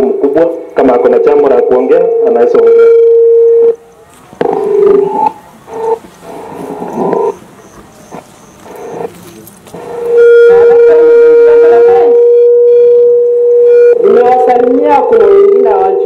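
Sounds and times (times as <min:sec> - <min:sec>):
microphone feedback tone: 0:00.0 - 0:16.0
faint voices: 0:03.8 - 0:12.2.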